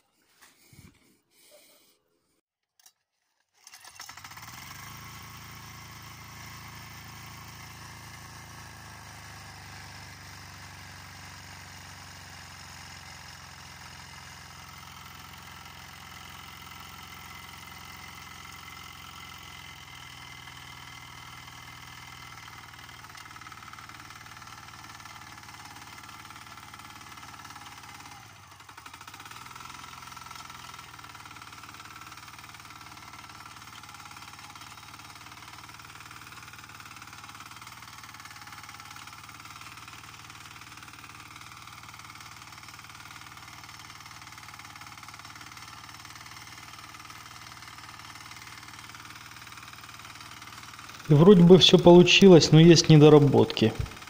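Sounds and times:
tractor engine running under load: 3.7s - 54.0s.

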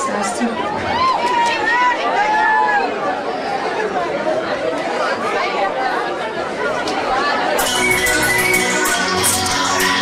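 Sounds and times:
audience chattering: 0.0s - 10.0s.

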